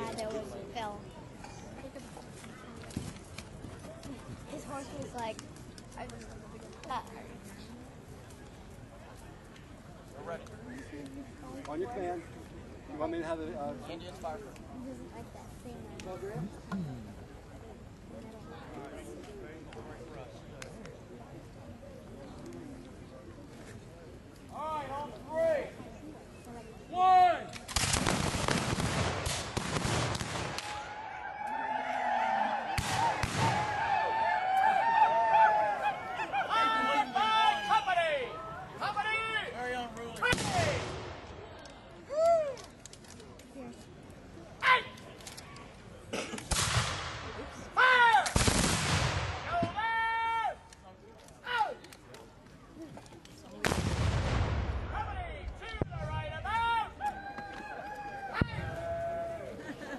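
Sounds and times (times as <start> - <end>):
musket fire volley: 27.5 - 31.0, 32.7 - 34.0, 40.2 - 41.6, 46.4 - 49.9, 53.6 - 56.5
loud shout: 30.7 - 38.2, 47.8 - 48.3, 49.5 - 50.6, 56.2 - 59.5
loud shouts: 47.8 - 48.3, 49.5 - 50.6, 55.0 - 59.5.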